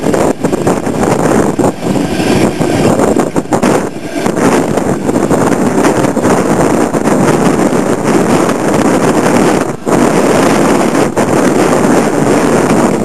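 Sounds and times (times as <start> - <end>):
train wheels rumbling on rail: 0.0 - 13.0
wind buffeting microphone: 0.0 - 13.0.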